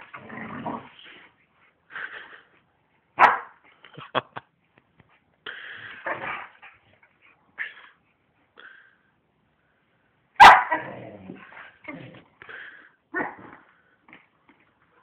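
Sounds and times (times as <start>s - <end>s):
dog barking: 3.2s - 3.6s, 10.4s - 10.9s.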